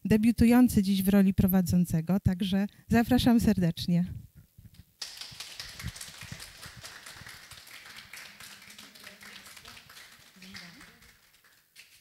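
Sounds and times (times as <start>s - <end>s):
audience applauding: 5.0s - 12.0s.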